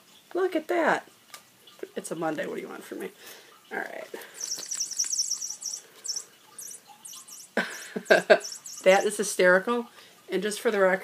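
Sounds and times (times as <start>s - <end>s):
electronic mouse squeaks: 4.4s - 7.5s, 8.4s - 9.1s
person laughing: 7.6s - 8.6s.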